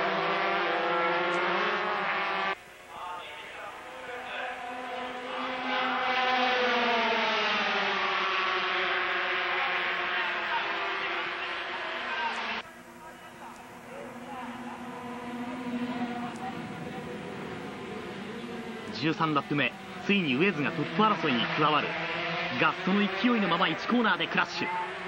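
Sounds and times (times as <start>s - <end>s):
racing motorcycles passing at high revs: 0.0s - 2.6s, 3.7s - 12.7s, 13.7s - 25.0s
distant motorcycle engines: 0.0s - 25.0s.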